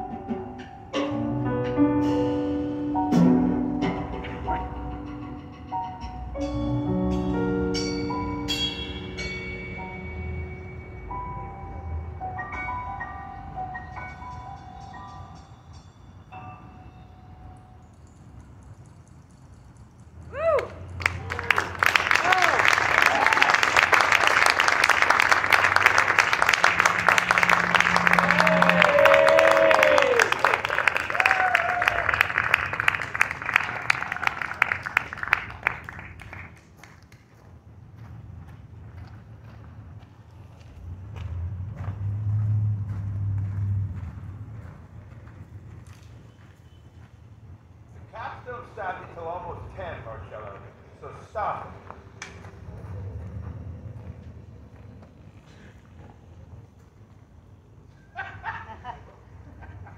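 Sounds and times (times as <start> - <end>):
audience applauding and cheering: 20.3 - 37.2.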